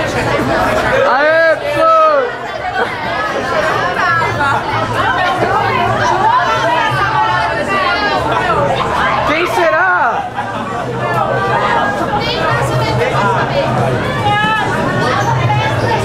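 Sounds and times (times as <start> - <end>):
people chattering and calling out: 0.0 - 16.0.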